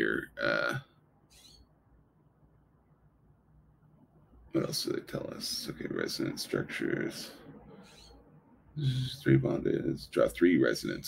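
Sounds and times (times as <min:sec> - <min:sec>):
low hum: 0:01.4 - 0:11.0.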